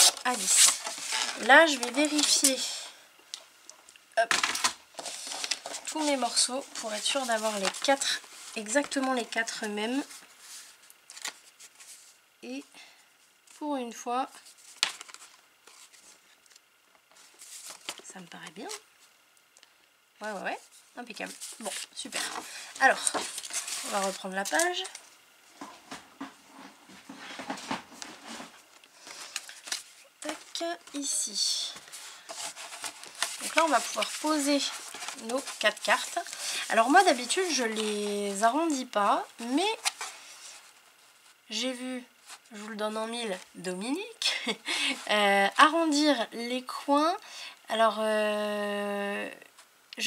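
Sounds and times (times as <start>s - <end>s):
soft card rustles: 0.0s - 2.6s, 4.3s - 12.2s, 14.3s - 19.1s, 20.6s - 25.7s, 26.6s - 41.4s.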